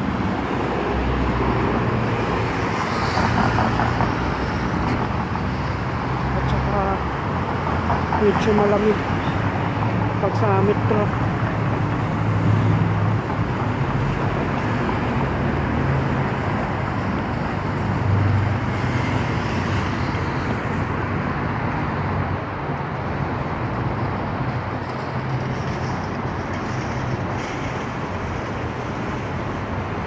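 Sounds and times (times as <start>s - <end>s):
cars and vans driving past: 0.0s - 30.0s.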